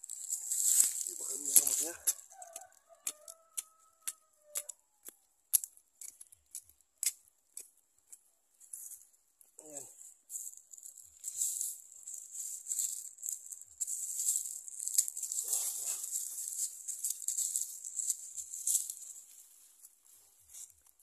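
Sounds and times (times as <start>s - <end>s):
dry plant debris rustling: 0.0s - 2.4s, 10.3s - 20.8s
hands scraping dry soil: 0.0s - 4.8s, 9.7s - 21.0s.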